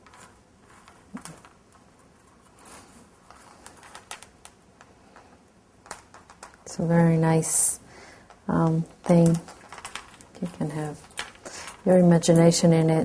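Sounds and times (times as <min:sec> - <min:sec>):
wire clicking and rustling: 0:00.0 - 0:13.0.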